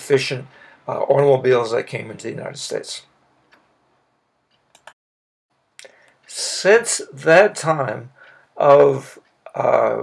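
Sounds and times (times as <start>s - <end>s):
faint room hiss: 0.0s - 4.8s, 5.5s - 10.0s.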